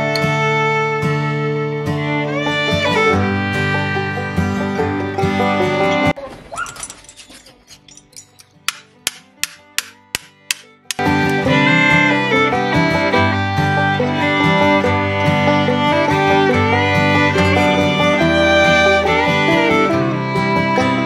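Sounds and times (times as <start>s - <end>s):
fiddle and guitar music: 0.0s - 6.3s, 8.6s - 21.0s
hammer knocking on knife: 8.7s - 11.1s.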